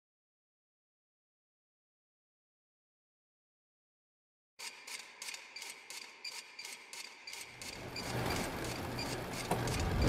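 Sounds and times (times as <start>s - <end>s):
rhythmic mechanical ticking: 4.6s - 10.0s.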